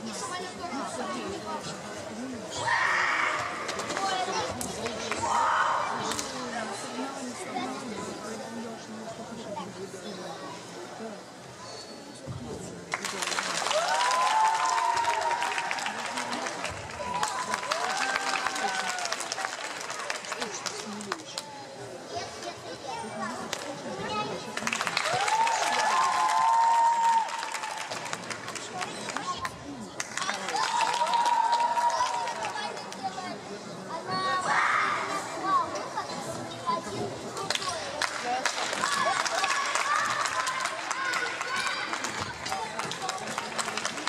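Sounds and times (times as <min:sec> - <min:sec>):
chatter of children and adults: 0:00.0 - 0:44.0
spectators applauding: 0:12.9 - 0:21.3, 0:24.6 - 0:29.4, 0:30.0 - 0:32.9, 0:37.6 - 0:44.0.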